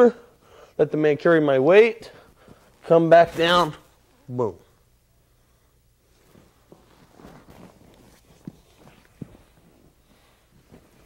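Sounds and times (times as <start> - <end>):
bodies rustling on foam mat: 2.4 - 4.3, 6.0 - 11.0.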